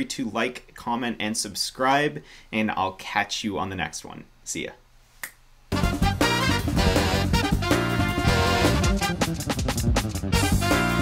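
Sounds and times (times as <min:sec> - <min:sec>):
finger snap: 0:05.2 - 0:05.4
loud music with steady beat: 0:05.7 - 0:11.0.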